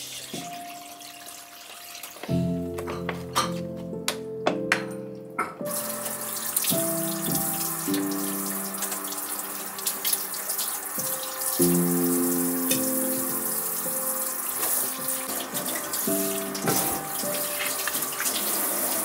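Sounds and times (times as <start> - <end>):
background music: 0.0 - 19.0
cooking pot hissing: 5.7 - 19.0.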